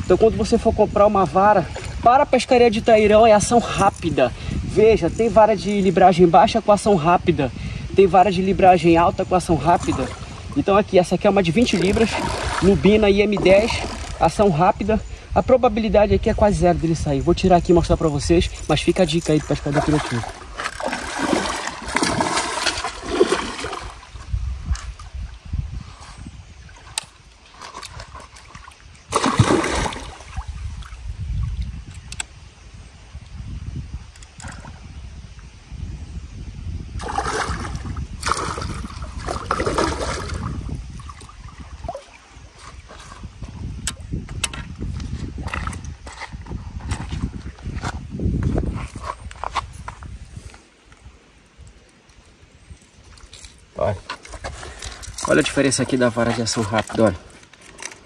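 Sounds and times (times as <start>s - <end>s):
fish thrashing and splashing: 11.6s - 14.2s, 19.4s - 24.2s, 26.8s - 30.7s, 37.0s - 43.2s.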